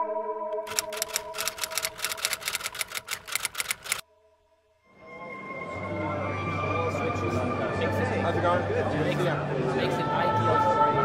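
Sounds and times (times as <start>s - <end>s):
typewriter key clicks: 0.6s - 4.0s.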